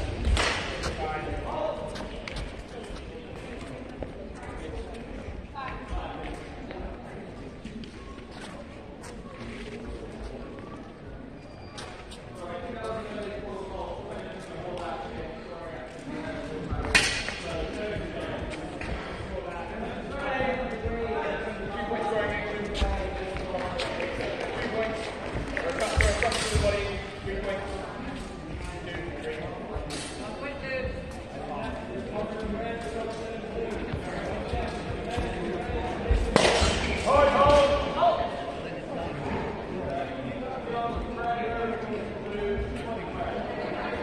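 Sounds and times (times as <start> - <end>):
echoing chatter of voices: 0.0 - 44.0.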